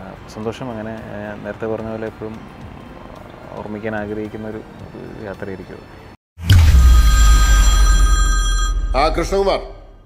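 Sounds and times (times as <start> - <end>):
deep impact boom: 6.4 - 10.0
high metallic ringing: 6.6 - 10.0.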